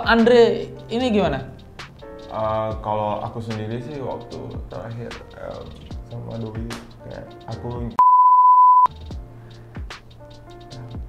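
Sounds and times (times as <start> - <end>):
background music: 0.0 - 8.0, 8.9 - 11.0
censor bleep tone: 8.0 - 8.9.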